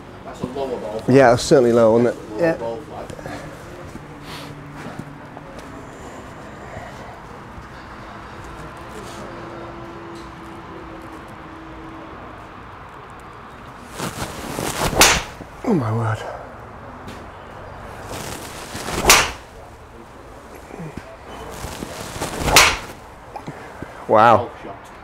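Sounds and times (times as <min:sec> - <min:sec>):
low steady background noise: 0:00.0 - 0:25.0
golf club striking ball: 0:14.9 - 0:15.4, 0:19.0 - 0:19.5, 0:22.4 - 0:23.0.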